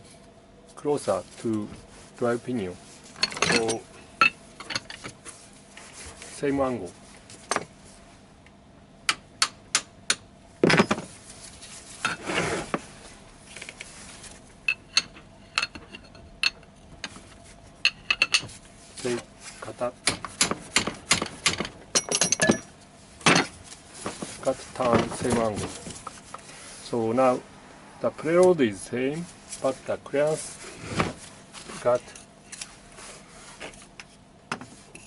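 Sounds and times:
metal tools tapping on metal: 3.2s - 5.1s, 14.7s - 16.7s, 17.8s - 18.5s, 21.1s - 22.7s.

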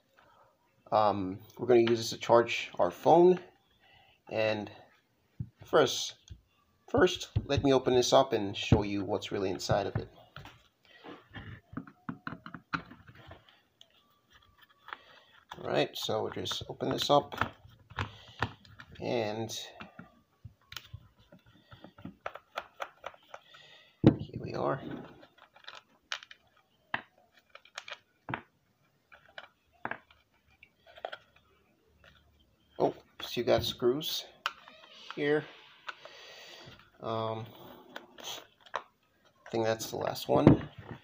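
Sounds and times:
hands handling plastic housing: 7.0s - 33.8s, 34.4s - 41.0s.

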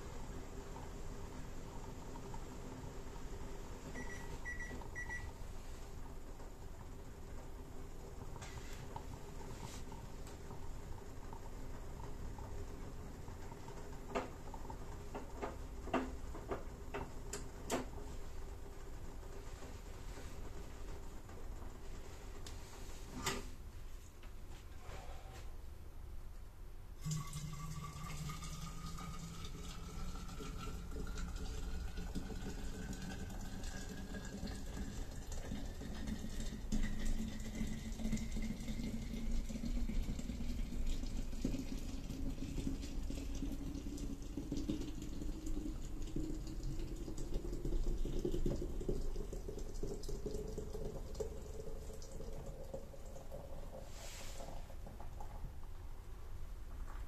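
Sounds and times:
liquid pouring into pot: 27.0s - 55.8s.

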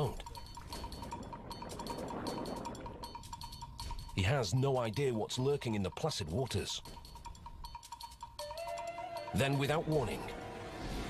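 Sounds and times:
water swishing and lapping: 0.0s - 8.2s
thin steady tone: 0.0s - 10.7s.

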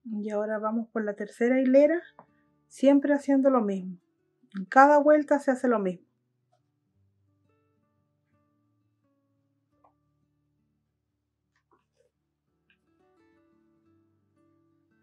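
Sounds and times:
faint plucked guitar music: 0.0s - 11.0s, 11.6s - 15.0s.

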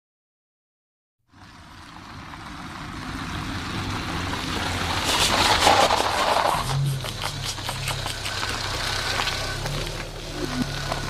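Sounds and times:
car engine hum: 1.3s - 11.0s
tyres on gravel: 1.7s - 11.0s.

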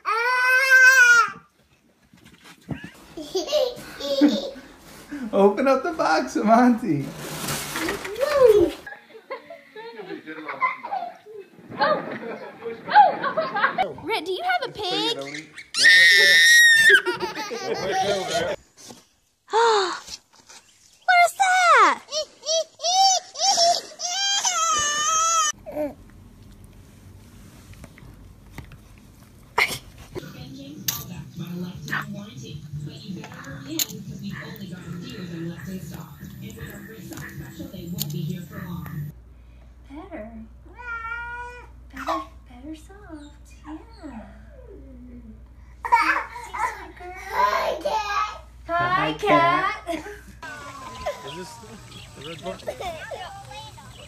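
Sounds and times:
toddler squealing: 15.3s - 17.1s.

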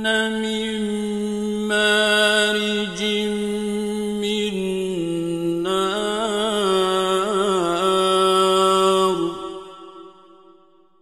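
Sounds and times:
man reciting melodically: 0.0s - 9.7s.

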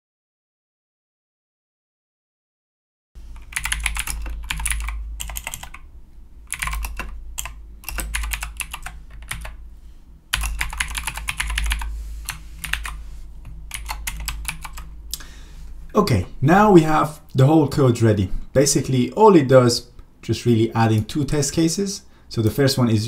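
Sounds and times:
steady low hum: 3.2s - 23.0s
keyboard typing: 3.3s - 5.9s, 6.5s - 9.6s, 10.3s - 15.0s.

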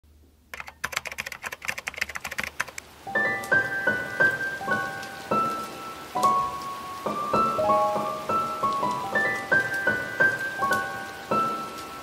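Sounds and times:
keyboard typing clicks: 0.5s - 2.8s
light piano melody: 0.8s - 12.0s.

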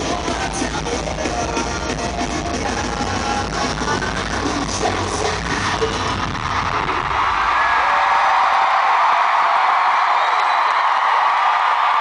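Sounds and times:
crowd cheering and whooping: 4.5s - 12.0s.

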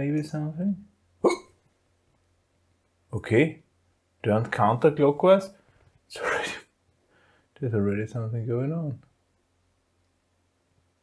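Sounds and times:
man's short exclamation: 1.2s - 1.5s.

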